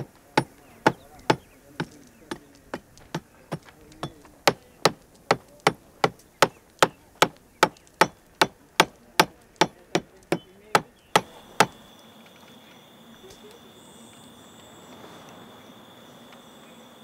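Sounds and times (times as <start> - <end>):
hammer striking masonry: 0.0 - 11.8.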